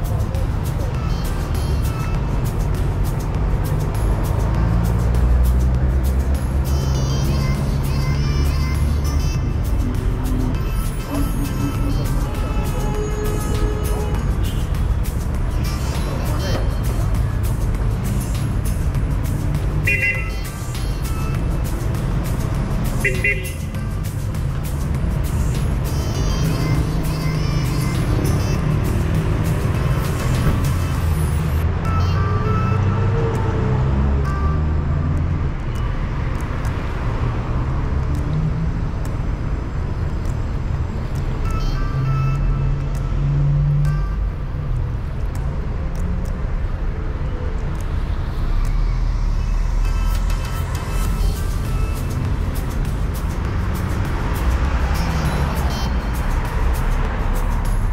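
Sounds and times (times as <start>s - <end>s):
car traffic passing: 0.0s - 57.9s
music: 0.0s - 57.9s
people's voices: 10.9s - 12.9s, 15.8s - 17.2s.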